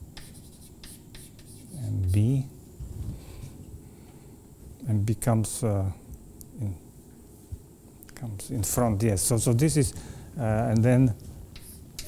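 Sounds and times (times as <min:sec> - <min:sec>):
chalk tapping and scraping on blackboard: 0:00.1 - 0:01.8, 0:11.5 - 0:12.0.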